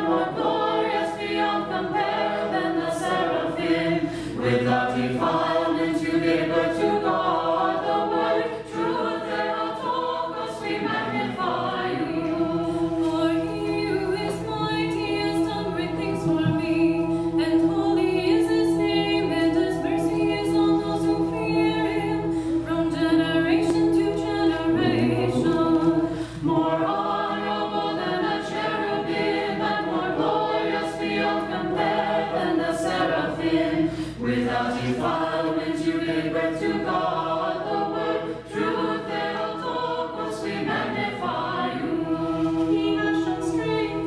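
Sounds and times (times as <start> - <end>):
choir singing a cappella: 0.0 - 44.0.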